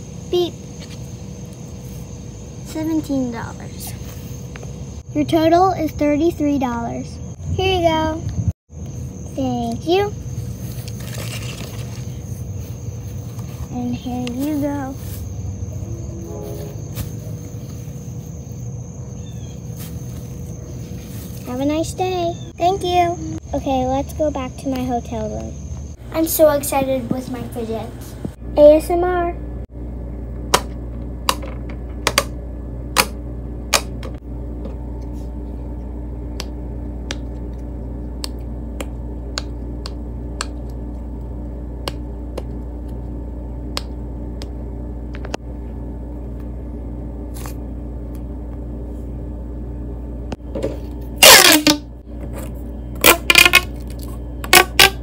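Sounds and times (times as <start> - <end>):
high-pitched insect drone: 0.0 - 26.5
steady low hum: 0.0 - 55.0
low rumble: 15.0 - 18.8.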